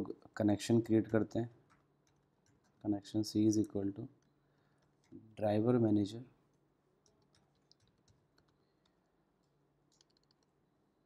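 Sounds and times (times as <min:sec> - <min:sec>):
computer keyboard keystrokes: 0:07.0 - 0:08.6, 0:09.4 - 0:10.5.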